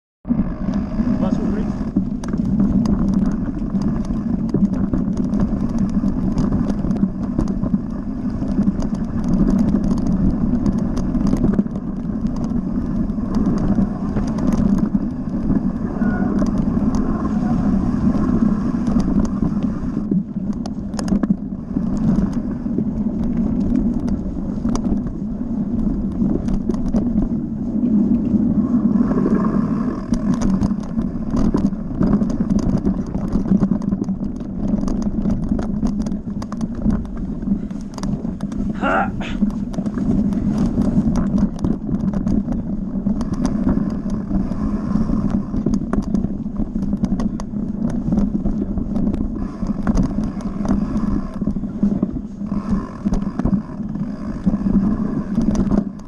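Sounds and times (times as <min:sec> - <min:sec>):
wind: 0:00.2 - 0:56.0
bike clicking and rattling: 0:00.3 - 0:56.0
bike tyres rumbling on gravel: 0:00.3 - 0:56.0.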